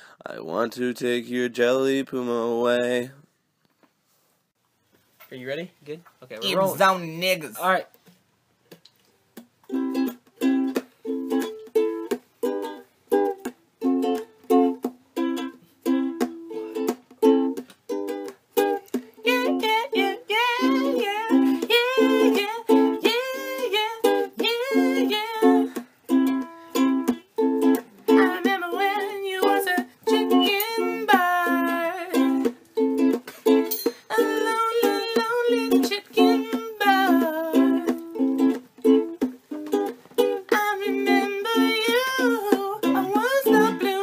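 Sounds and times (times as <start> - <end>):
ukulele strumming: 9.3 - 44.0
person humming wordless melody: 19.2 - 27.2, 28.1 - 32.6, 34.1 - 38.6, 40.5 - 44.0.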